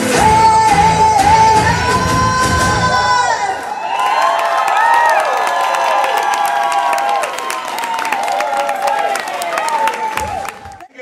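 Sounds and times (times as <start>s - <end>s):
pop song: 0.0s - 3.9s
audience cheering and screaming: 1.5s - 10.9s
clapping: 4.0s - 10.9s.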